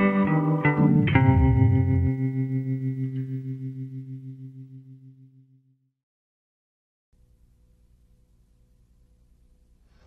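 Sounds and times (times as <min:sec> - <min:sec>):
electric guitar chord ringing: 0:00.0 - 0:05.5.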